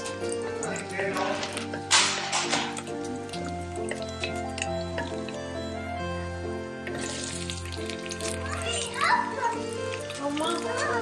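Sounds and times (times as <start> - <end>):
background music with held notes: 0.0 - 11.0
sizzling in hot butter: 0.0 - 11.0.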